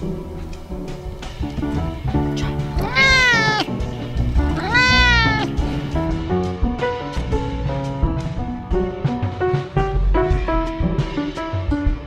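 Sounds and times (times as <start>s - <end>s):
jazz music: 0.3s - 6.2s
cat meowing: 2.7s - 5.9s.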